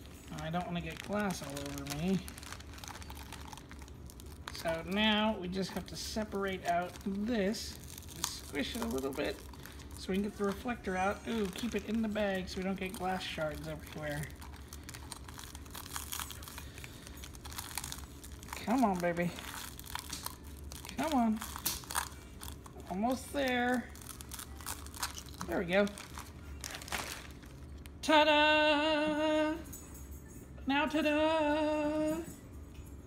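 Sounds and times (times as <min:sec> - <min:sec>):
plastic bag crinkling: 0:00.0 - 0:28.0.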